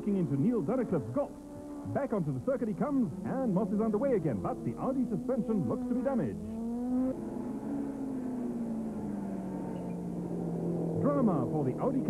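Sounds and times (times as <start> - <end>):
racing car engine: 0.0 - 12.0.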